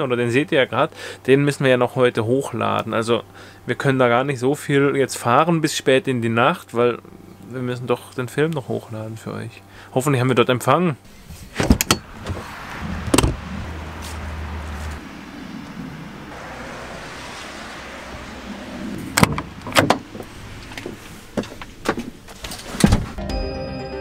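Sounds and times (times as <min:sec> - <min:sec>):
door clunks and shutting: 0:11.5 - 0:13.4, 0:19.1 - 0:23.2.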